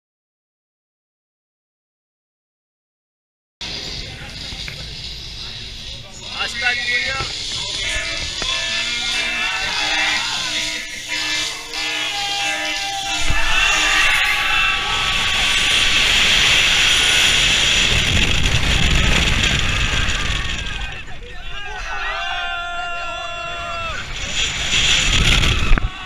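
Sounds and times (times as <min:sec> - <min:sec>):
roller coaster train rumbling: 0:03.6 - 0:26.0
wind rushing over camera: 0:13.2 - 0:26.0.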